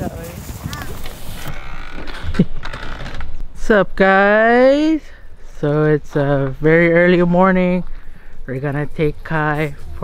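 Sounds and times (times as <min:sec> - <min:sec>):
person speaking: 0:03.5 - 0:10.0.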